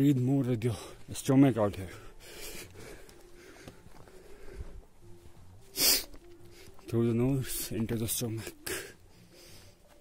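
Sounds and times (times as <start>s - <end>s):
man breathing: 1.9s - 6.8s, 8.5s - 10.0s
loud breath through nose: 5.7s - 6.6s.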